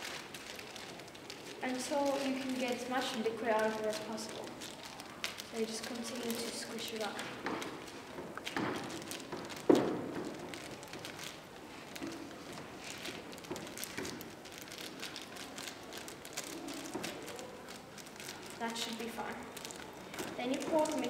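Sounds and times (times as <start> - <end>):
plastic bag crinkling: 0.0 - 21.0.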